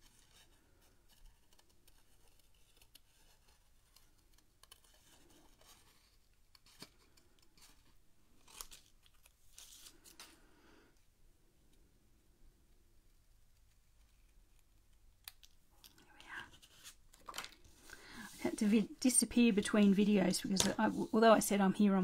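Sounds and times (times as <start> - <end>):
paper rustling: 0.0 - 10.4, 16.2 - 21.5.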